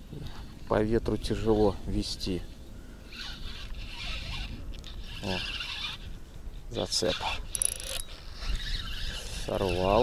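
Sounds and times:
wind rumbling on microphone: 0:00.0 - 0:10.0
fishing reel whirring: 0:03.0 - 0:06.2, 0:06.8 - 0:10.0.

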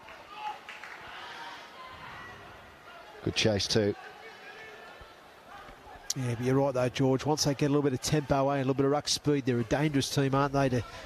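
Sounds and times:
low steady stadium background: 0:00.0 - 0:11.0.

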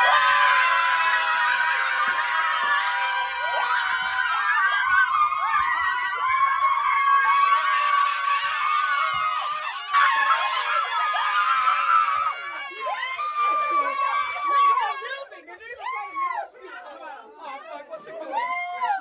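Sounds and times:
women screaming: 0:00.0 - 0:15.1, 0:18.2 - 0:19.0.

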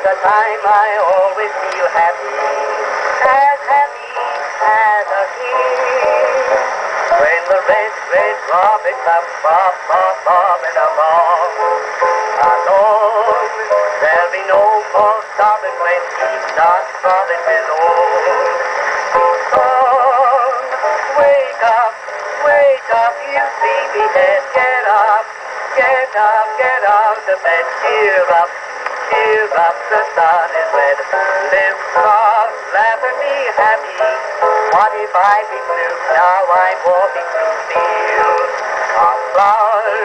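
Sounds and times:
man singing: 0:00.0 - 0:11.8, 0:12.4 - 0:18.7, 0:19.5 - 0:40.0
popular song on phonograph: 0:00.0 - 0:40.0.

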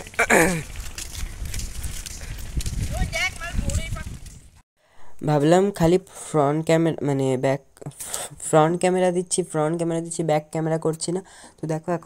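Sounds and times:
wind rumbling on microphone: 0:00.0 - 0:04.6.

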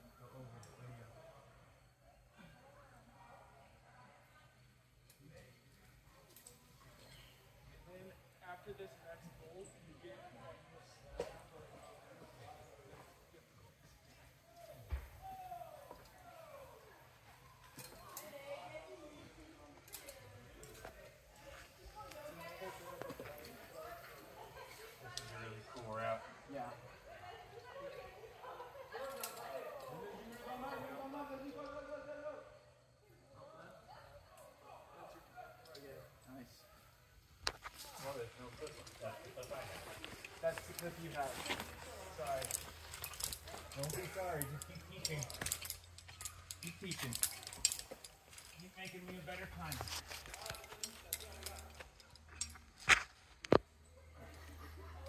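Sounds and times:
distant people talking: 0:00.0 - 0:55.0.

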